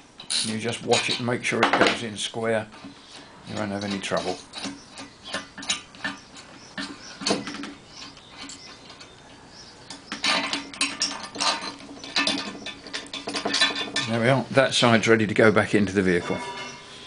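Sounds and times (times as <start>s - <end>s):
spanner clicking and scraping: 2.8s - 9.2s.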